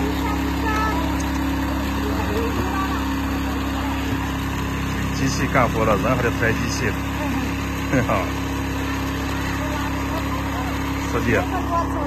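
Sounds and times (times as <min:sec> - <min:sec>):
walking tractor engine running: 0:00.0 - 0:12.0.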